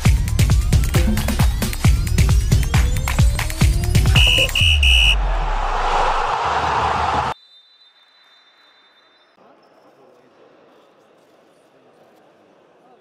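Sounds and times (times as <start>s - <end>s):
sports hall room noise: 4.0s - 7.4s
short high electronic beeps: 4.1s - 5.2s
whooshing sweep: 5.1s - 7.4s.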